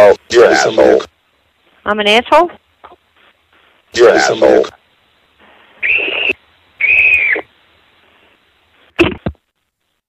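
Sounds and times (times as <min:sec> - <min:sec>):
high whistled notes over telephone: 0:05.8 - 0:07.5.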